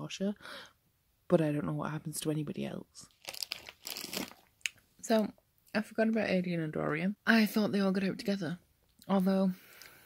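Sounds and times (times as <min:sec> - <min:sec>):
crinkling and rustling: 0:03.0 - 0:05.3.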